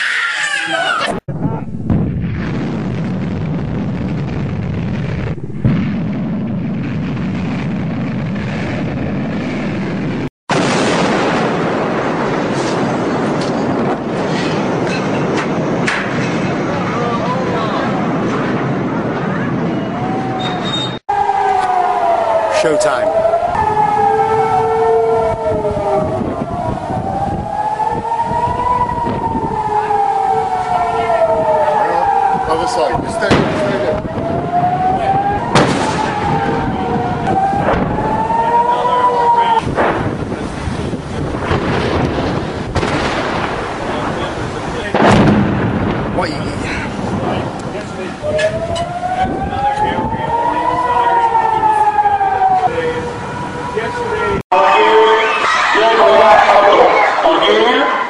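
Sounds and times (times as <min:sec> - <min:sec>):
sirens wailing: 0:00.0 - 0:01.2, 0:11.6 - 0:58.0.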